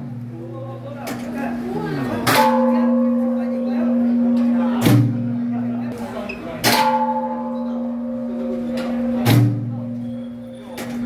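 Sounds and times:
large temple bell ringing: 0:01.6 - 0:11.0.

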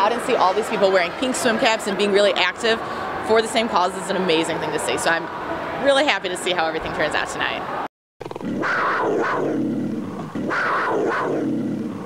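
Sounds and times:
big cat roar: 0:08.3 - 0:12.0.

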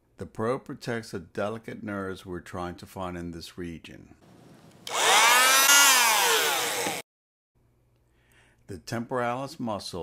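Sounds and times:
electric bone saw whining: 0:04.8 - 0:07.1.

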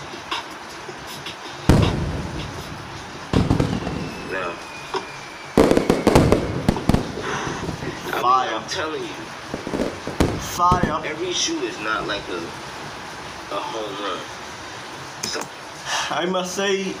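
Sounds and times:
fireworks crackling: 0:00.0 - 0:15.8
fireworks bangs: 0:01.7 - 0:08.2, 0:09.5 - 0:12.2
faint falling whistle: 0:03.6 - 0:06.9.

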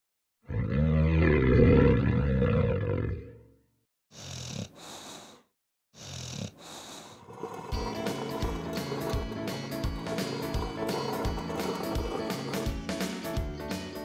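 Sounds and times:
wheezy hissing breaths: 0:04.1 - 0:12.9
cartoon snoring: 0:04.1 - 0:13.1
music: 0:07.7 - 0:14.0.

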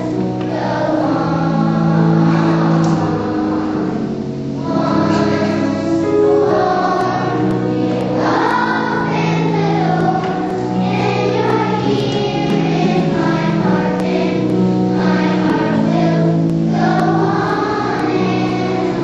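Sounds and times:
children's choir singing: 0:00.0 - 0:19.0
musical accompaniment: 0:00.0 - 0:19.0.

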